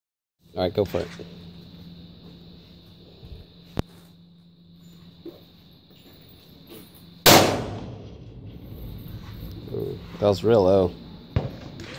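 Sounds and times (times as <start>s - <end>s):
steady low hum: 0.4s - 11.9s
rifle shot: 7.2s - 8.2s.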